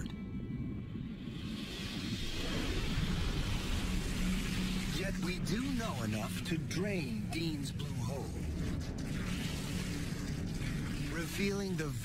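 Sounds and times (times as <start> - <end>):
water draining rush and rumble: 1.2 - 12.0.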